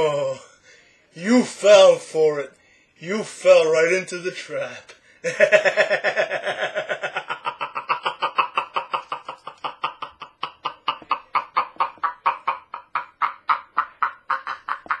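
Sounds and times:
man laughing: 5.2 - 15.0.

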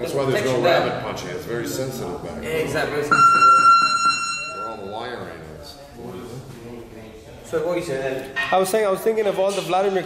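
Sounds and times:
timer buzzer high tone: 3.1 - 5.0.

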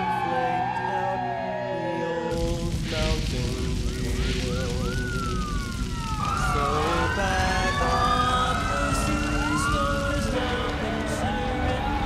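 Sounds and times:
emergency sirens wailing: 0.0 - 12.0
heavy low rumble: 2.3 - 12.0.

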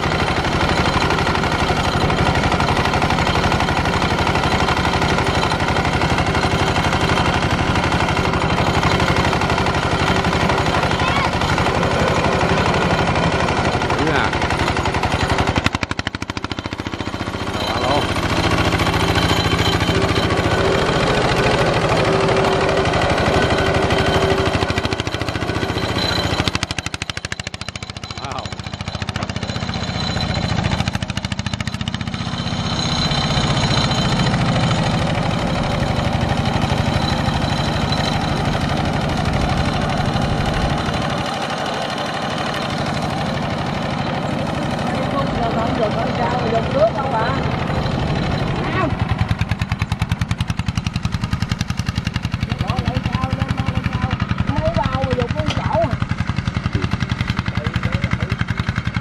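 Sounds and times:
diesel tractor engine chugging: 0.0 - 59.0.

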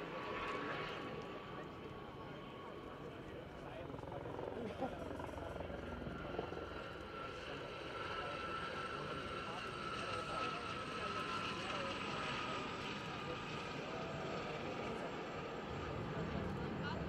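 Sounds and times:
helicopters flying past: 0.0 - 17.0.

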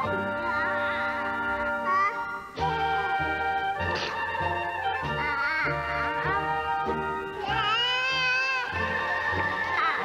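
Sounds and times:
music with long held notes: 0.0 - 10.0
baby babbling cry: 7.4 - 8.8.

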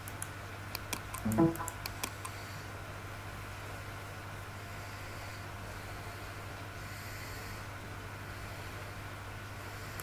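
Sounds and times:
computer mouse clicks: 0.0 - 2.4
steady low hum: 0.0 - 10.0.

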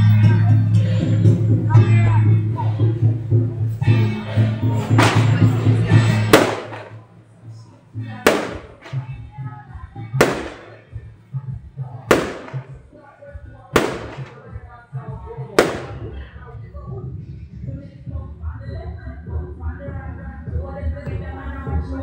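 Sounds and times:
firecracker bangs: 5.0 - 5.5, 6.2 - 7.0, 8.3 - 9.1, 10.2 - 10.9, 12.1 - 12.8, 13.8 - 14.5, 15.6 - 16.2.

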